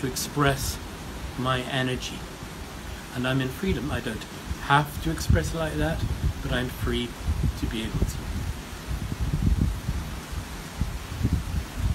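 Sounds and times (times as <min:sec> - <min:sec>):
faint hiss: 0:00.0 - 0:11.9
wind buffeting microphone: 0:00.0 - 0:11.9.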